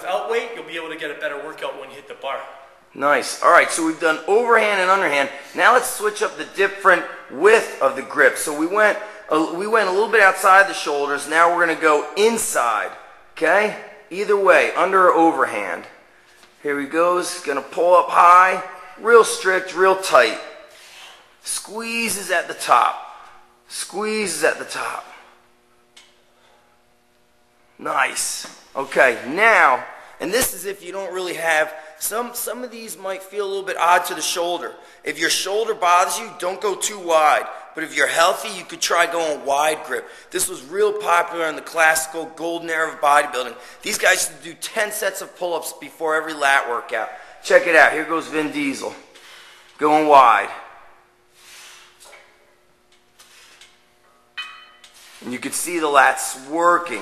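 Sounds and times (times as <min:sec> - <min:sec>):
faint steady hum: 0:00.0 - 0:57.0
man breathing with effort: 0:49.1 - 0:49.8.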